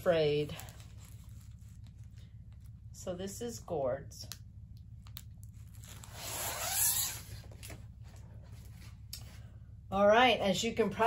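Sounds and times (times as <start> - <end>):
plastic film rustling: 0.0 - 2.8.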